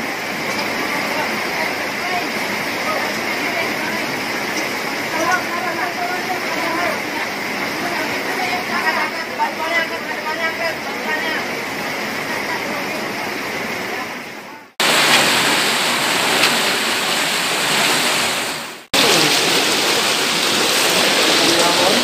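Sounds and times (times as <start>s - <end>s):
floodwater rushing: 0.0s - 22.0s.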